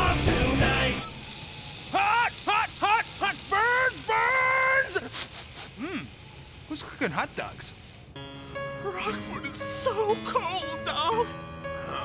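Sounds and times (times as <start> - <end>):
man straining grunts: 5.8 - 6.1.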